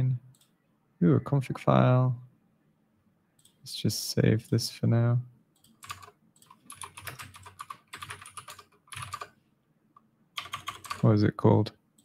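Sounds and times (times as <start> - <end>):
typing on computer keyboard: 5.6 - 9.3, 10.4 - 11.0.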